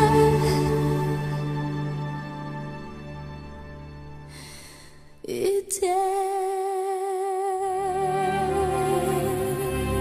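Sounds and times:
soft ballad accompaniment: 0.0s - 4.7s
woman singing a long note: 5.3s - 10.0s.

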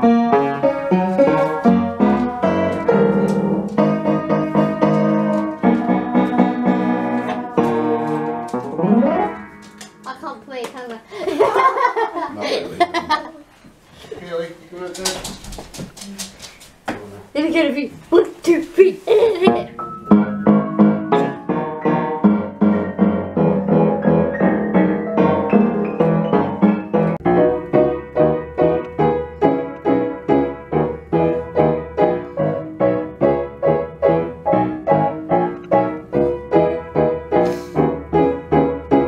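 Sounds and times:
upright piano playing: 0.0s - 10.6s, 19.2s - 39.0s.

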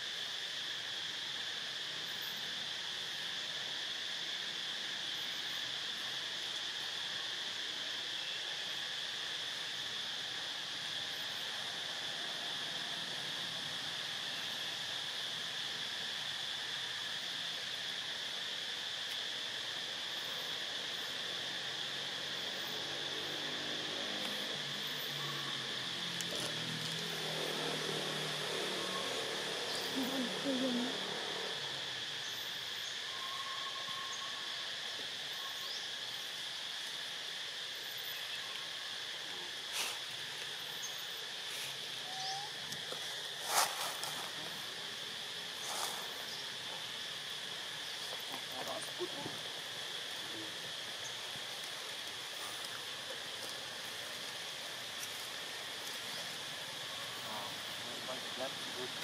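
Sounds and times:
high-pitched insect drone: 0.0s - 59.0s.

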